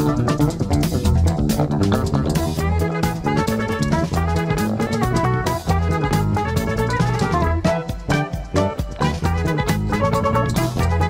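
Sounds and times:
backing track with drums and keyboards: 0.0s - 11.0s
fretless electric bass: 0.0s - 11.0s.

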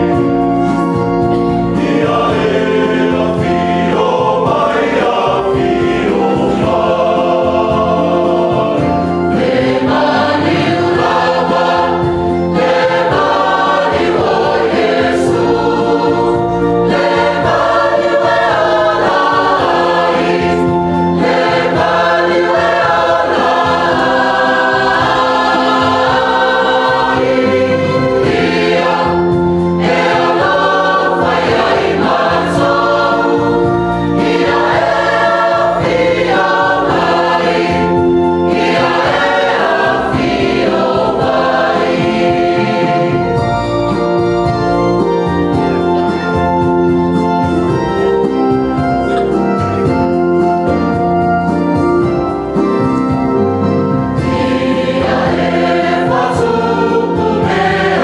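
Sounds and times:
choir singing a hymn: 0.0s - 58.0s.

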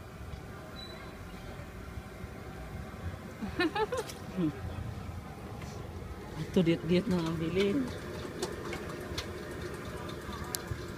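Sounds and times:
faint constant tone: 0.0s - 10.9s.

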